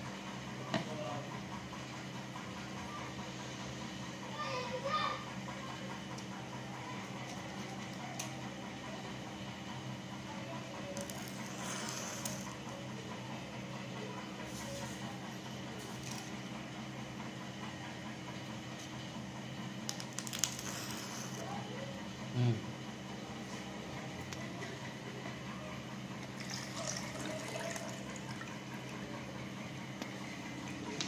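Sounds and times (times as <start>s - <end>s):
low background hum: 0.0s - 31.0s.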